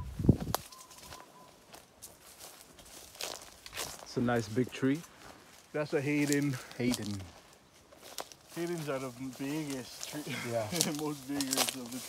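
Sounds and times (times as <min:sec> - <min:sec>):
footsteps on grass: 0:00.0 - 0:12.0.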